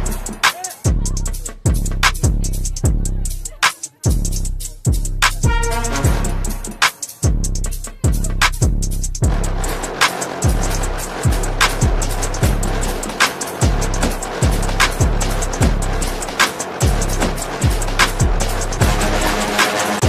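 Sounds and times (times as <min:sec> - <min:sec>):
deep bass kicks: 0:00.0 - 0:03.4, 0:04.1 - 0:19.6.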